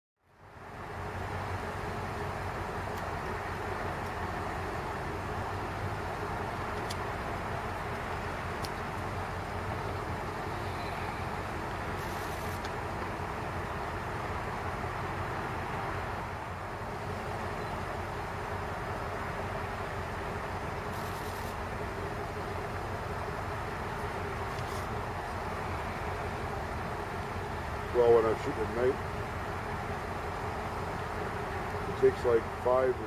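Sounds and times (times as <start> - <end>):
distant city traffic rumble: 0.2 - 33.0
faint steady hum: 0.3 - 33.0.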